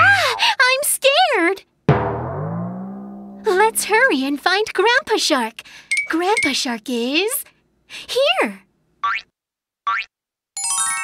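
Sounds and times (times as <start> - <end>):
cartoon boing sweeps: 1.9 - 4.0.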